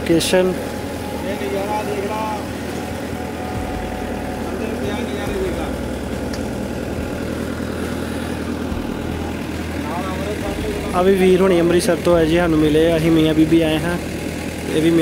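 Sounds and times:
boat engine droning: 0:00.0 - 0:15.0.

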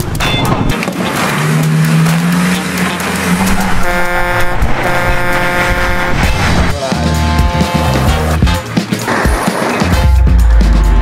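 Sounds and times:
engine noise: 0:00.0 - 0:09.9
multi-note vehicle horn blasts: 0:02.6 - 0:06.5.

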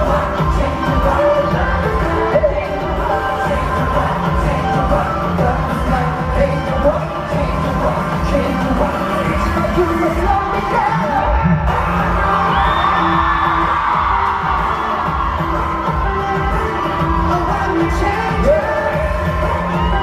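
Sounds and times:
dance-pop track with heavy bass: 0:00.0 - 0:20.0
sung vocals: 0:00.0 - 0:20.0.

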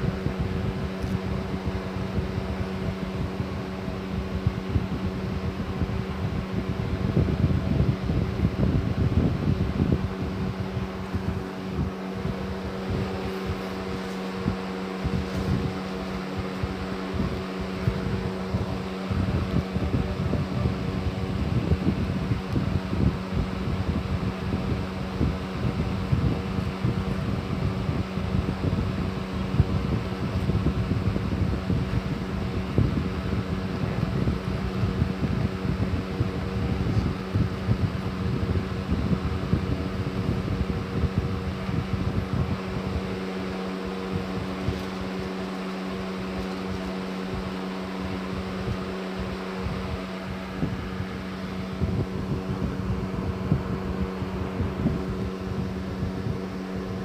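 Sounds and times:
low rumbling noise: 0:00.0 - 0:57.0
motor-like hum: 0:00.0 - 0:57.0.

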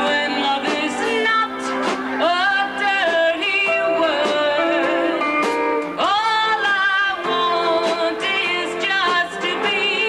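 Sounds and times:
acoustic guitar: 0:00.0 - 0:10.0
band accompaniment: 0:00.0 - 0:10.0
woman singing: 0:00.0 - 0:10.0.

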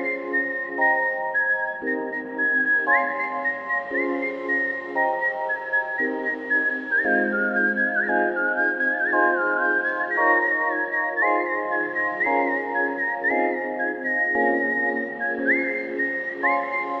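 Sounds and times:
whistled melody: 0:00.0 - 0:17.0.

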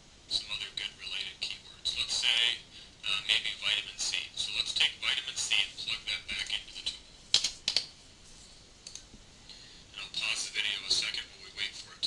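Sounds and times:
tinny narration through speakers: 0:00.3 - 0:07.0, 0:09.9 - 0:12.0
sharp clicks: 0:07.3 - 0:07.9.

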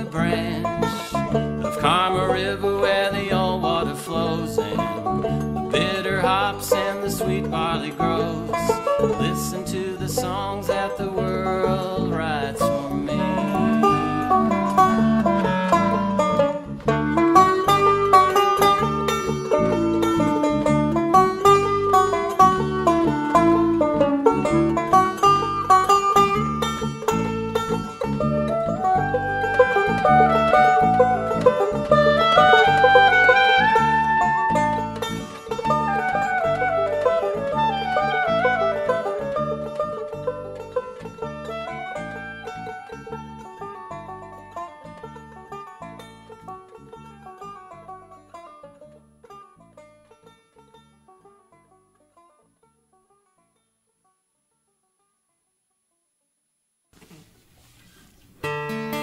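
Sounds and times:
instrumental song with steady beat: 0:00.0 - 0:48.8.

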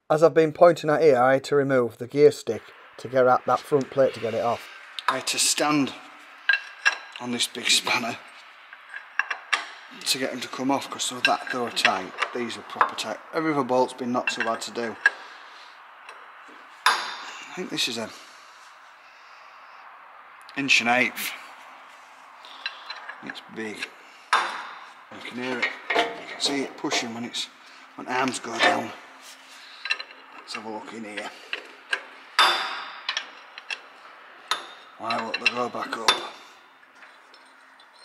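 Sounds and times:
spanner clinking on metal: 0:14.0 - 0:15.2, 0:22.5 - 0:27.2, 0:29.8 - 0:36.4
spanner clicking on a bolt: 0:31.2 - 0:33.9.

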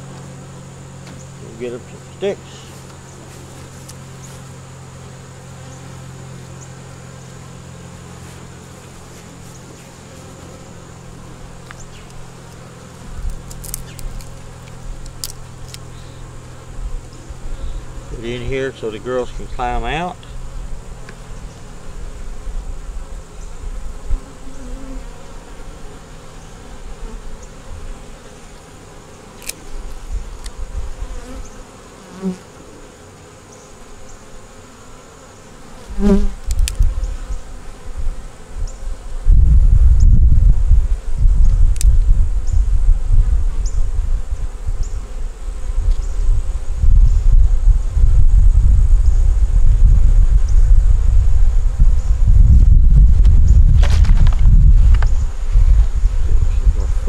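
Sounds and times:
honeybees buzzing: 0:00.0 - 0:57.0
bee flying past microphone: 0:20.3 - 0:57.0.

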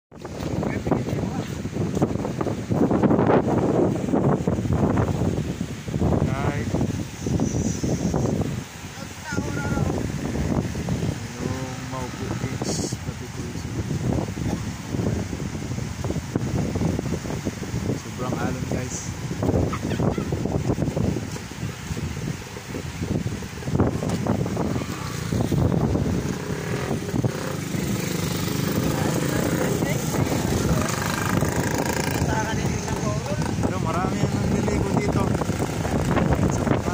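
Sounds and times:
choppy sea surf: 0:00.1 - 0:36.9
wind buffeting microphone: 0:00.1 - 0:36.9
motor scooter engine passing: 0:24.6 - 0:33.8.

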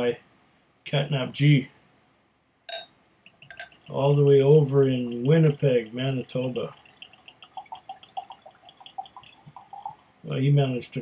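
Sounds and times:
liquid glugging into glass: 0:02.7 - 0:10.0.

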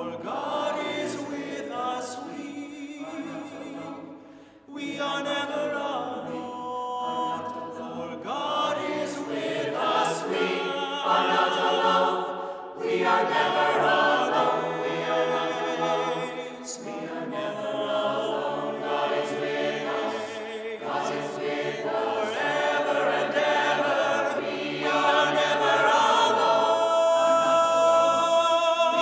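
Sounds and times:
mixed choir singing a cappella: 0:00.0 - 0:29.0.

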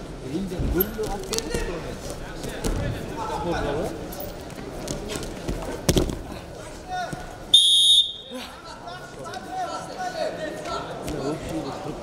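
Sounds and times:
referee's whistle blast: 0:07.5 - 0:08.3.

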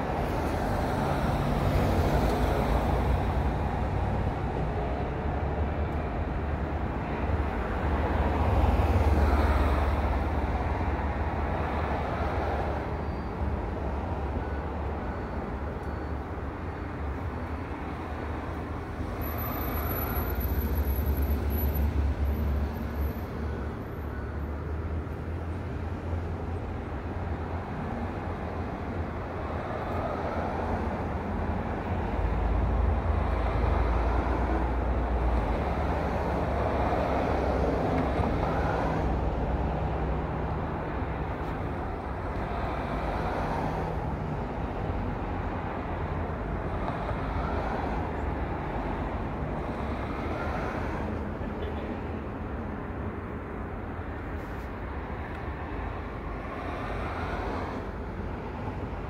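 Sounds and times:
road traffic rumble: 0:00.0 - 0:59.0
vehicles passing: 0:00.0 - 0:59.0.

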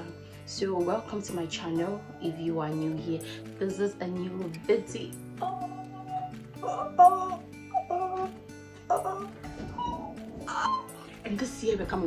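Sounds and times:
background music sustained notes: 0:00.0 - 0:12.0.

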